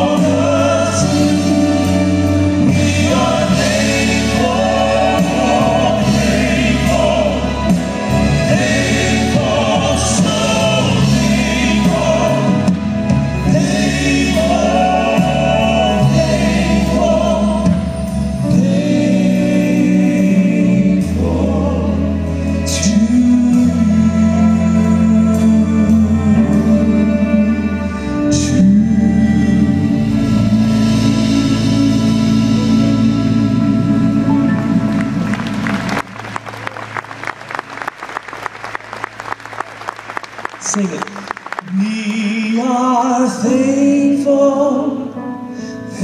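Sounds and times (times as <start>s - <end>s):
male vocal quartet singing: 0.0s - 36.0s, 41.6s - 46.0s
live band accompaniment: 0.0s - 46.0s.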